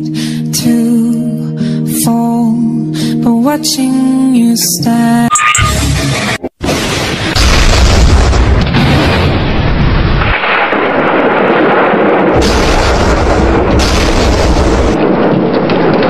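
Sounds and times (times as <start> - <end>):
explosion-like booming: 6.6 - 16.0.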